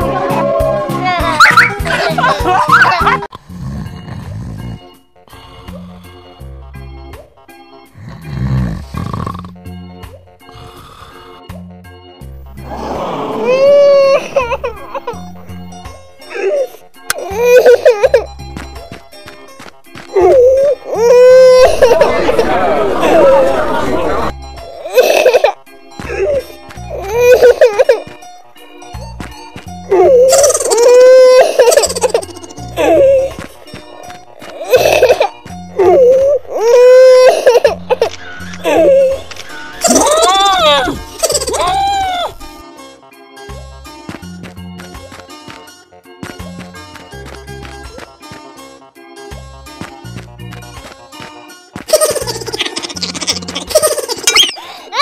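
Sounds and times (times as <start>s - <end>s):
background music: 0.0s - 55.0s
cartoon voice wailing and sobbing: 1.0s - 3.3s, 12.7s - 15.2s, 20.2s - 23.4s, 29.9s - 33.4s, 34.6s - 42.4s, 52.0s - 55.0s
high squeaky cartoon cry of fright: 30.3s - 32.4s, 39.8s - 42.4s, 52.9s - 55.0s.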